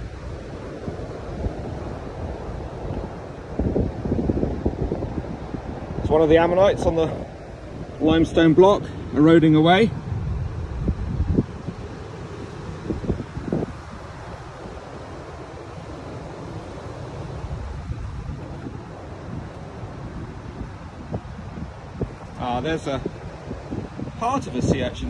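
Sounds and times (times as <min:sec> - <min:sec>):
surf on pebble beach: 0:00.0 - 0:25.0
wind buffeting microphone: 0:00.0 - 0:25.0.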